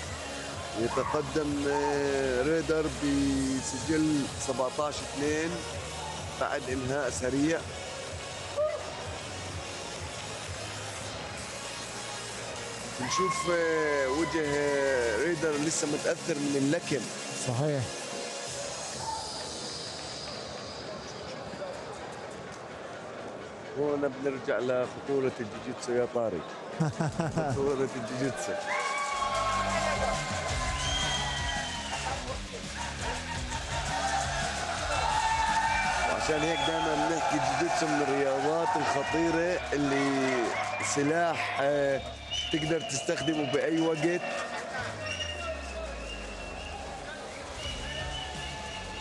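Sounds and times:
arena crowd hubbub: 0:00.0 - 0:49.0
music playing: 0:00.0 - 0:49.0.

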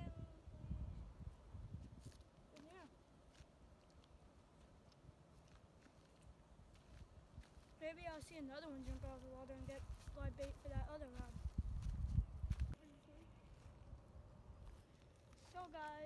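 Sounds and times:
wind rumble on microphone: 0:00.0 - 0:02.2, 0:08.8 - 0:12.8.

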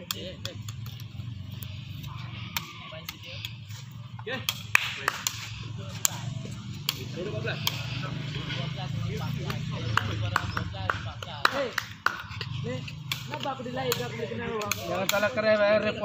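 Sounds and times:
sharp taps and clicks: 0:09.4 - 0:15.3.

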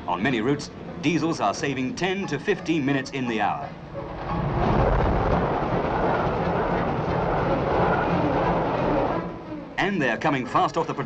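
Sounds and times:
diesel locomotive passing at speed: 0:03.8 - 0:09.5.

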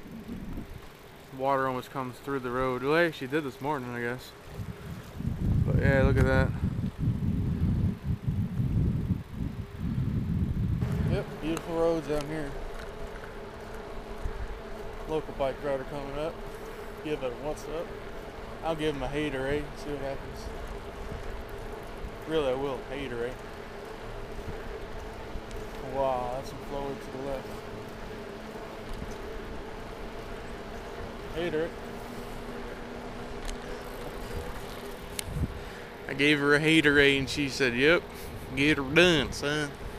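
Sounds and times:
wind on microphone: 0:00.0 - 0:00.9, 0:04.5 - 0:12.8, 0:33.4 - 0:35.8
bicycle rolling on asphalt: 0:00.0 - 0:39.9
road and wind noise: 0:00.0 - 0:39.9.

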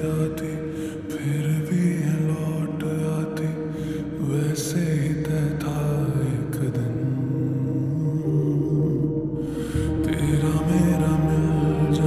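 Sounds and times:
low sustained backing: 0:00.0 - 0:12.0
reverb-drenched vocal notes: 0:00.0 - 0:12.0.

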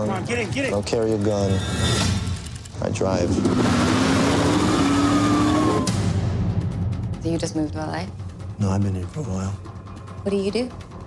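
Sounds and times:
car engine accelerating: 0:00.0 - 0:06.1.

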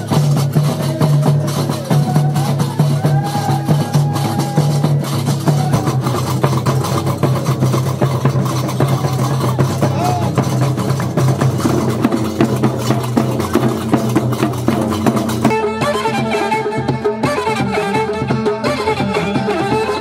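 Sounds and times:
drums beaten with sticks: 0:00.0 - 0:20.0.

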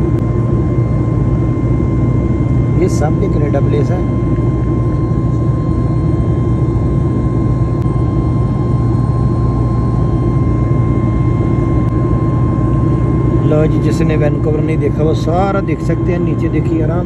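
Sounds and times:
airliner cabin engine rumble: 0:00.0 - 0:17.0
thin steady whine: 0:00.0 - 0:17.0.

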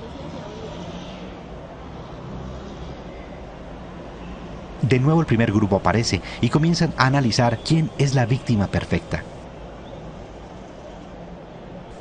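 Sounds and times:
faint murmur of voices: 0:00.0 - 0:03.5
low traffic rumble: 0:00.0 - 0:12.0.

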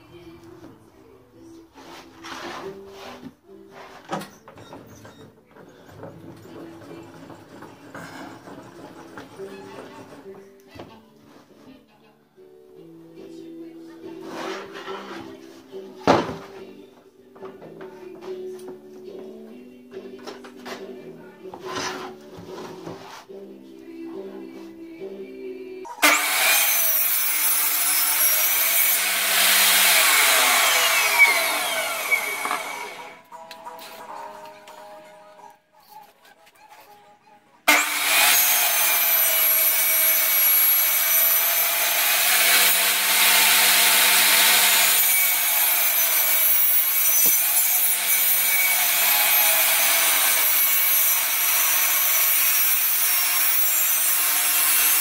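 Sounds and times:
soft background music: 0:00.0 - 0:55.0
table saw ripping a board: 0:26.0 - 0:33.2, 0:37.7 - 0:55.0.

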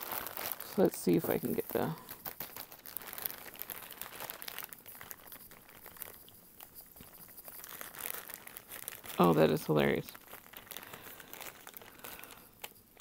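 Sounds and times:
plastic bags crinkling: 0:00.0 - 0:13.0.

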